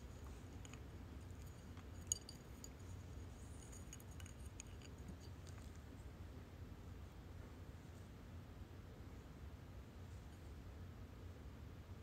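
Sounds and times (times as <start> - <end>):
small clicks and scratchy ticks: 0.0 - 5.9
low steady hum: 0.0 - 12.0.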